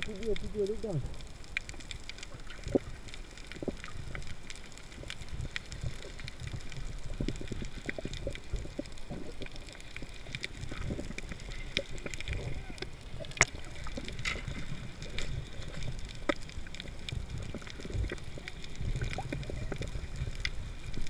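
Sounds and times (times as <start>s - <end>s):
underwater clicks and crackles: 0.0s - 21.0s
underwater rumble of moving water: 0.0s - 21.0s.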